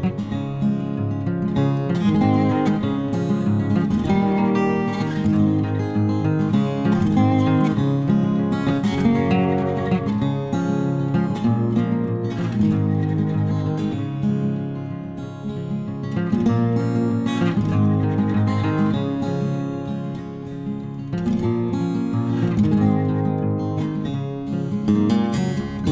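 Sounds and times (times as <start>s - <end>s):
acoustic guitar plucked and strummed: 0.0s - 25.9s.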